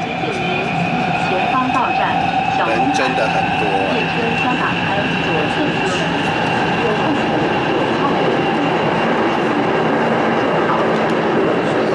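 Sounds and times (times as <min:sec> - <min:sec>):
metro train running noise: 0:00.0 - 0:11.9.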